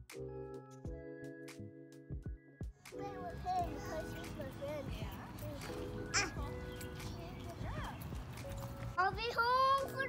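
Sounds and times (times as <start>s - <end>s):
quiet music: 0.0s - 10.0s
child calling: 6.0s - 7.5s.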